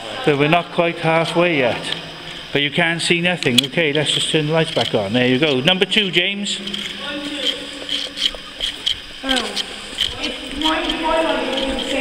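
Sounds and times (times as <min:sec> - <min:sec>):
unclear voices: 0:00.0 - 0:12.0.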